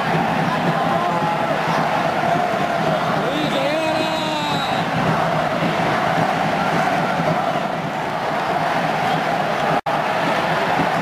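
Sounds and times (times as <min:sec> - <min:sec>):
stadium crowd cheering and chanting: 0:00.0 - 0:11.0.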